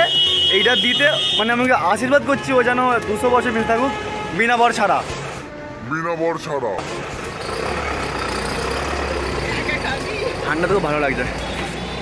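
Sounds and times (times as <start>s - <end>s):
vehicle engine rumbling: 6.8s - 12.0s.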